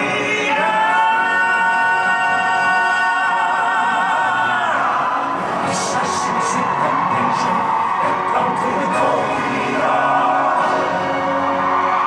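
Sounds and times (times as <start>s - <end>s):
man singing operatic note: 0.0s - 10.4s
backing music: 0.0s - 12.0s.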